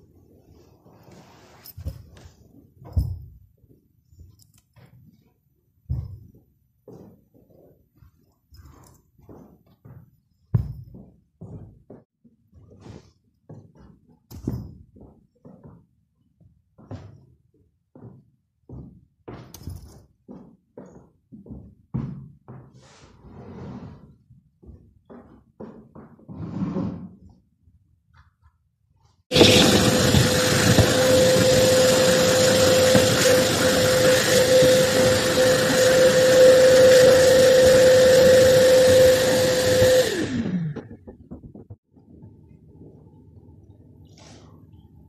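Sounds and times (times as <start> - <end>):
vacuum cleaner running: 29.3 - 41.1.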